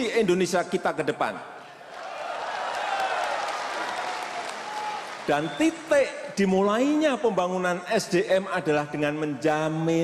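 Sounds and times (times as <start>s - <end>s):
crowd cheering: 1.8s - 5.9s
large crowd applauding: 1.9s - 5.9s.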